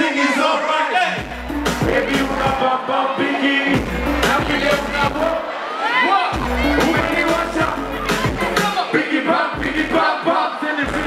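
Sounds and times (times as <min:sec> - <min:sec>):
crowd shouting along: 0:00.0 - 0:11.0
rap music with bass beat: 0:01.1 - 0:05.5, 0:06.3 - 0:11.0.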